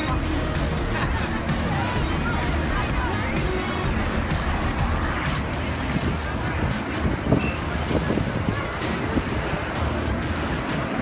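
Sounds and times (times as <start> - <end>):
dense outdoor din: 0.0 - 11.0
music playing: 0.0 - 11.0.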